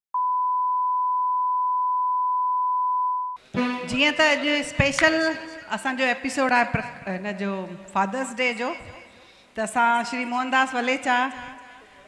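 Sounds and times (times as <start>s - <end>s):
steady sine test tone: 0.2s - 3.8s.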